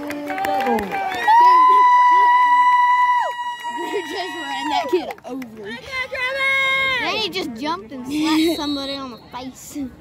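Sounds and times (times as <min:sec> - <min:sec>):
spectator's high held cheer: 0:00.0 - 0:05.0
crowd shouting and chattering: 0:00.0 - 0:10.0.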